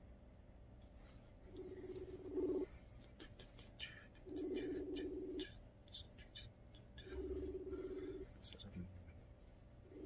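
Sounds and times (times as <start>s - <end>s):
telephone ringback tone: 1.6s - 2.7s, 4.3s - 5.4s, 7.1s - 8.2s.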